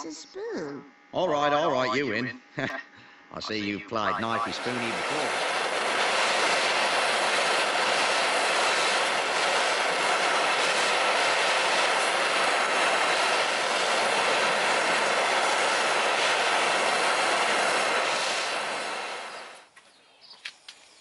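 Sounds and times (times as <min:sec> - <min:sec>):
propane torch hissing flame: 0:04.5 - 0:19.7.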